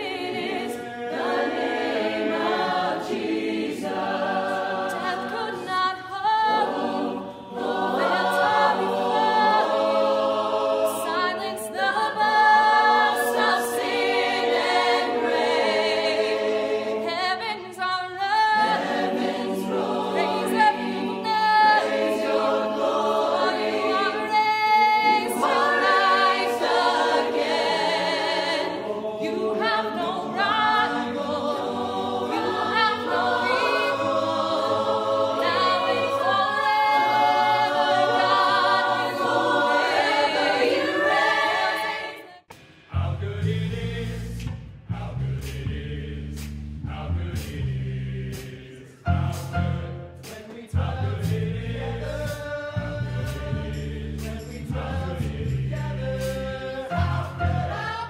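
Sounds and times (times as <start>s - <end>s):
choir singing sustained chords: 0.0s - 17.4s, 18.5s - 44.4s.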